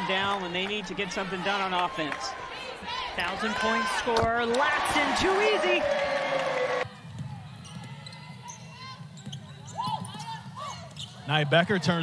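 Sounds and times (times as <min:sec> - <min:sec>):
loud arena crowd noise: 0:00.0 - 0:12.0
sneakers squeaking: 0:07.0 - 0:12.0.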